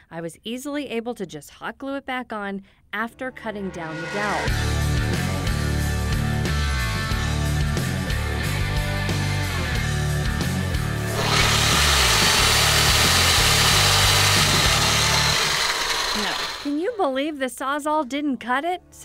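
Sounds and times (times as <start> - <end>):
background music with bass line: 3.5 - 15.4
reciprocating saw cutting wood: 11.0 - 17.0.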